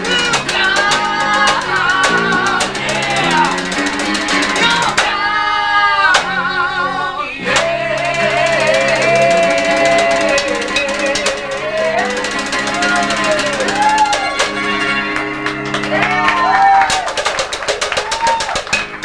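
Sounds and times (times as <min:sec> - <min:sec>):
rock band playing live: 0:00.0 - 0:06.4, 0:07.5 - 0:19.0.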